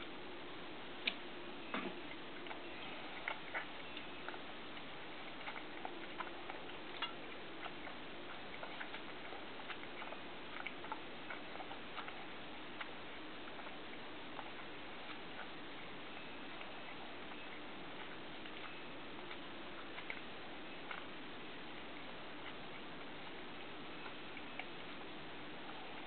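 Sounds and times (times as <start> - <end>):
faint steady hiss: 0.0 - 26.0.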